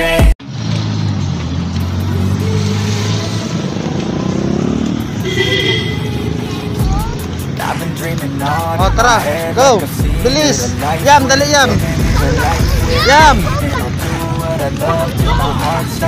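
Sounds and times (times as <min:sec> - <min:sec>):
music: 0:00.0 - 0:16.0
street noise: 0:00.0 - 0:16.0
vehicle engine humming: 0:00.0 - 0:16.0.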